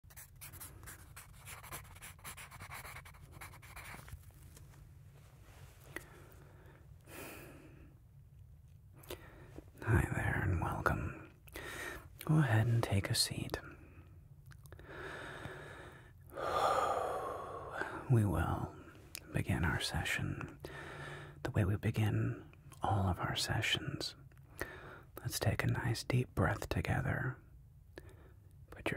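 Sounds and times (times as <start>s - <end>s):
pencil writing on paper: 0.0s - 4.1s
man breathing through mouth: 14.8s - 18.0s.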